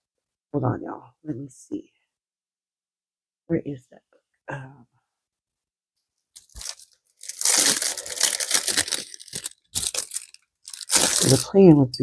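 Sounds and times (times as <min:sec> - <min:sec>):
plastic and paper crinkling: 0:06.4 - 0:11.7.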